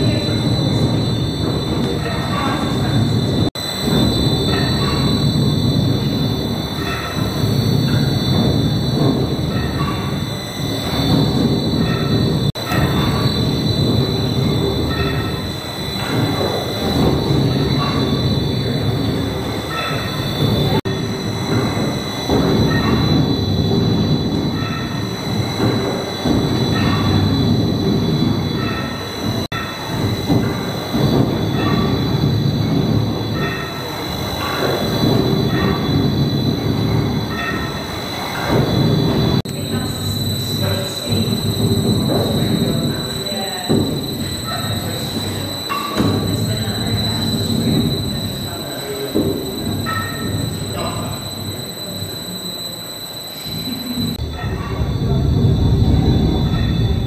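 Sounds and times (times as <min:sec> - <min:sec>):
faint high whine: 0:00.0 - 0:57.0.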